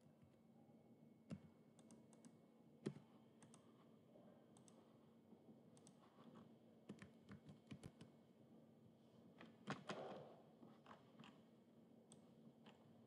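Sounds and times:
faint steady hum: 0:00.0 - 0:09.6
mouse and keyboard clicks: 0:05.8 - 0:08.1.

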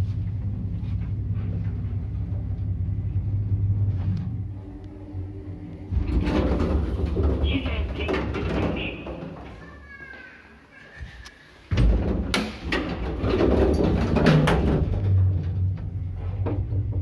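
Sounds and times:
lift cab humming: 0:00.0 - 0:09.2
lift rattling and clanking: 0:05.9 - 0:09.7, 0:11.7 - 0:17.0.

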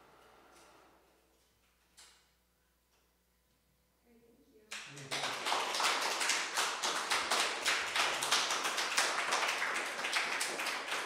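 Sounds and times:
audience applauding: 0:04.7 - 0:11.0.

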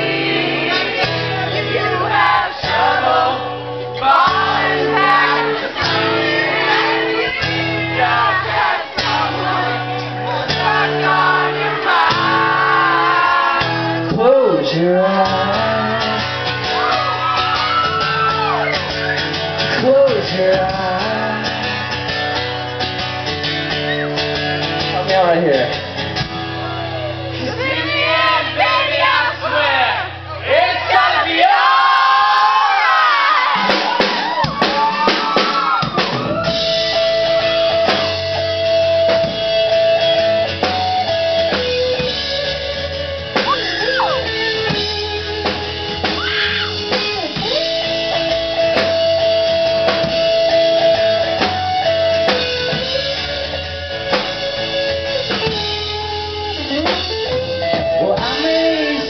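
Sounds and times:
person singing: 0:00.0 - 0:16.4, 0:19.7 - 0:21.6
electric guitar: 0:00.0 - 0:29.1, 0:33.4 - 0:59.0
drum kit: 0:00.0 - 0:29.5, 0:30.8 - 0:59.0
acoustic guitar strumming: 0:00.0 - 0:31.2, 0:36.0 - 0:59.0.

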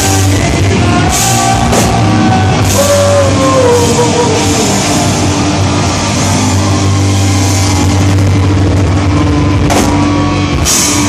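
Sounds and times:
punk rock band playing: 0:00.0 - 0:11.0
cymbal crash: 0:01.1 - 0:11.0.

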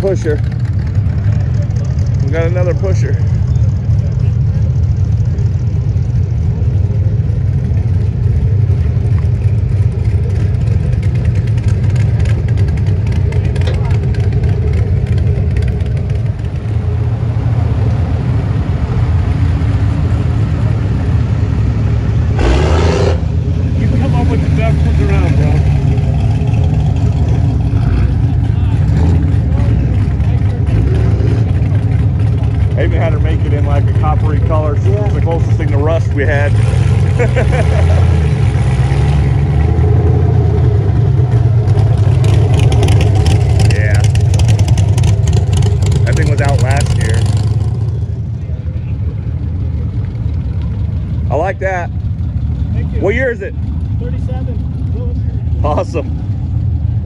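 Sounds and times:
engines rumbling at low speed: 0:00.0 - 0:57.0
crowd voices: 0:23.6 - 0:38.4, 0:46.0 - 0:51.9.

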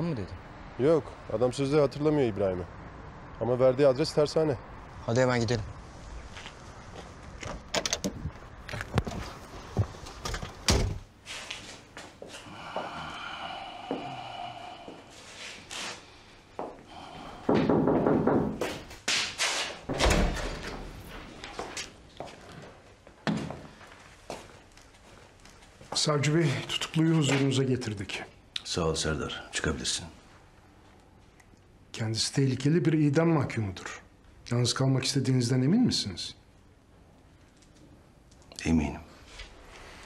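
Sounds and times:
doors shutting: 0:07.4 - 0:08.3, 0:19.8 - 0:21.3
footsteps: 0:17.5 - 0:26.1.

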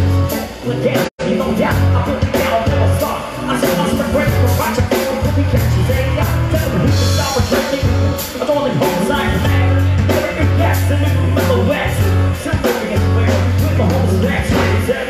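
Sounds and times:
bass guitar: 0:00.0 - 0:15.0
drum kit beat: 0:00.0 - 0:15.0
electric guitars: 0:00.0 - 0:15.0
keyboard: 0:00.0 - 0:15.0
man singing: 0:00.0 - 0:15.0.

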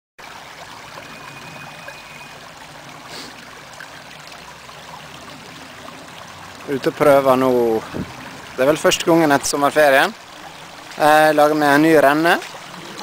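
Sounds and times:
stream flowing over stones: 0:00.2 - 0:13.0.

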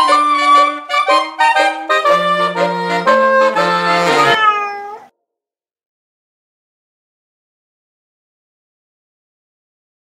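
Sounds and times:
alto saxophones playing: 0:00.0 - 0:04.4.

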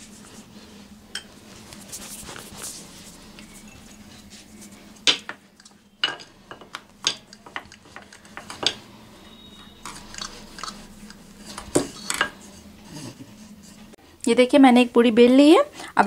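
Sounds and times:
utensils knocking on counter: 0:06.0 - 0:08.8.

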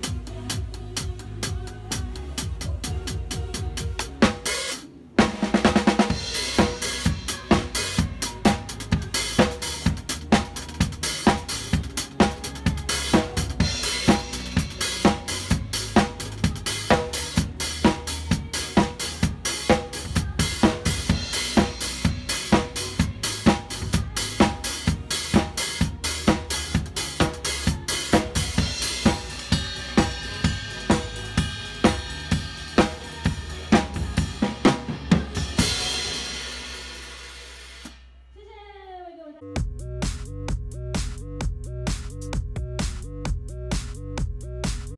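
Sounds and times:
drum kit playing: 0:00.0 - 0:38.2, 0:39.6 - 0:44.9.

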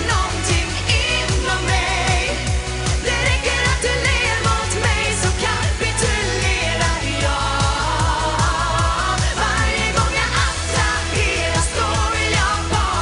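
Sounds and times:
driving beat with heavy bass: 0:00.0 - 0:13.0
person singing: 0:00.0 - 0:13.0.

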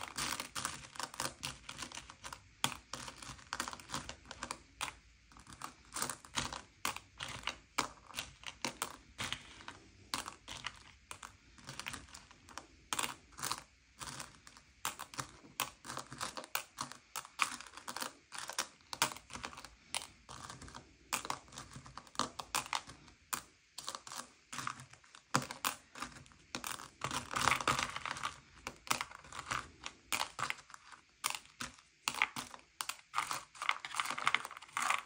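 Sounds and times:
candies clicking on paper plate: 0:00.0 - 0:35.0.

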